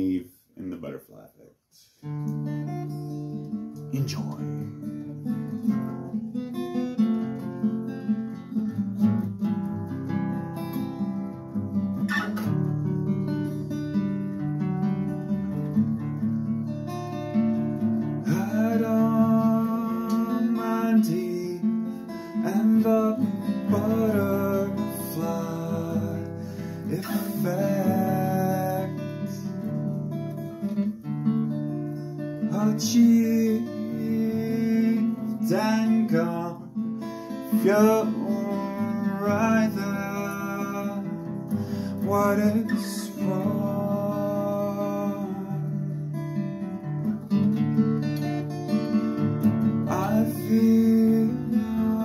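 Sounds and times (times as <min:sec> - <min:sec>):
acoustic guitar strumming: 0:01.8 - 0:52.0
man singing: 0:03.9 - 0:05.2, 0:18.2 - 0:29.8, 0:32.4 - 0:46.4, 0:49.7 - 0:52.0.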